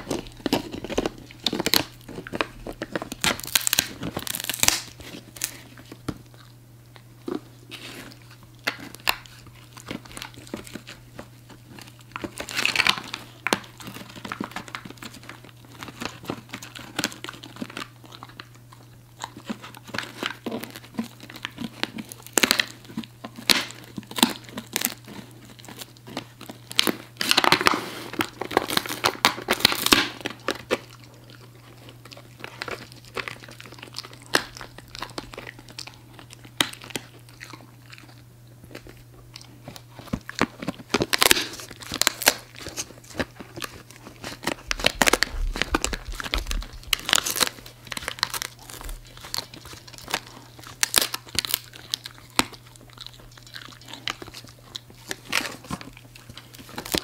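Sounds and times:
dog crunching dry treat: 0.0s - 57.0s.

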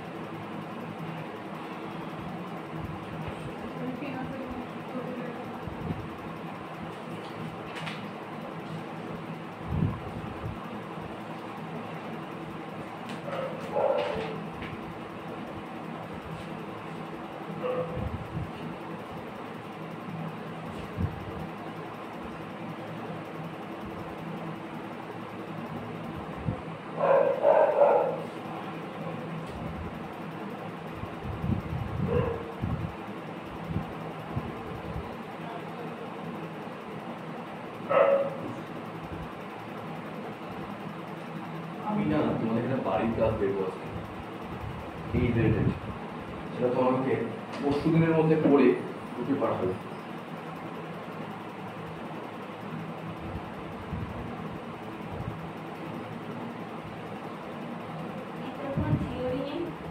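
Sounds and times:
steady low hum: 0.0s - 59.9s
dog barking: 13.2s - 14.4s, 17.6s - 18.0s, 27.0s - 28.3s, 32.1s - 32.6s, 37.9s - 38.5s.

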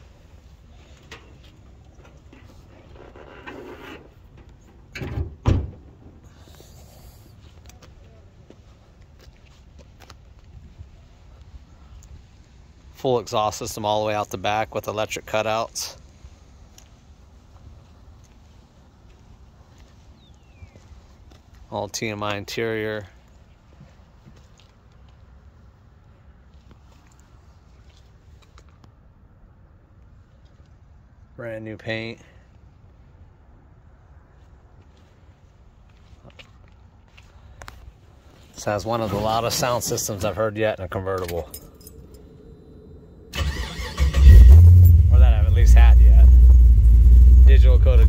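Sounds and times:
faint low rumble: 39.4s - 48.0s.

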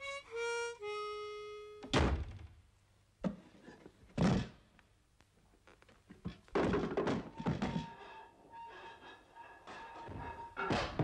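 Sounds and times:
wooden board thunks and clatter: 6.3s - 7.9s.

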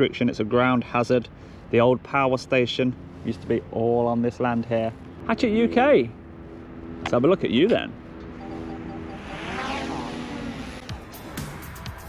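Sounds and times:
car passing by: 7.8s - 12.0s.

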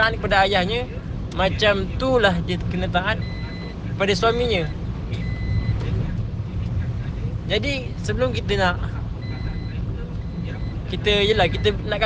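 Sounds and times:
steady low rumble: 0.0s - 12.0s
high-pitched electronic beep: 9.2s - 12.0s.

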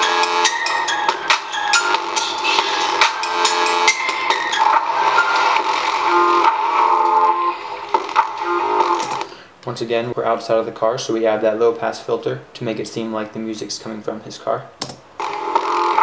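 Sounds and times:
instrumental beat music: 0.0s - 9.3s.

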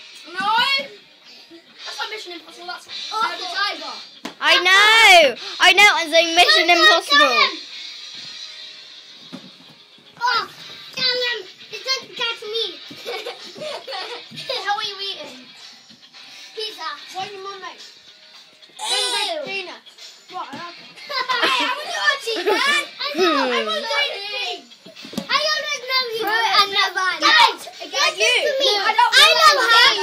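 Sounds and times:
faint background music: 0.0s - 30.0s
children calling out and chattering: 18.7s - 30.0s.

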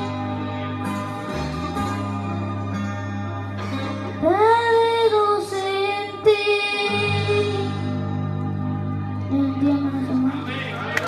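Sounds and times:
backing music: 0.0s - 11.0s
boy singing into microphone: 4.2s - 7.9s, 9.3s - 10.5s.

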